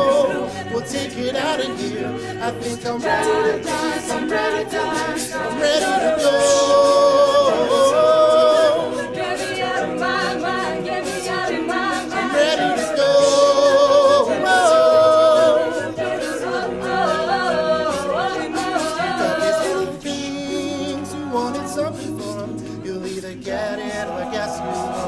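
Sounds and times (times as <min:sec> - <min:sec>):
a cappella group singing: 0:00.0 - 0:25.0.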